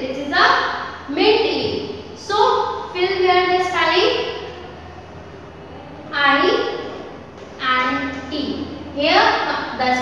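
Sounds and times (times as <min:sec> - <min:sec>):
woman's voice: 0:00.0 - 0:04.5, 0:07.6 - 0:10.0
low room hum: 0:00.0 - 0:10.0.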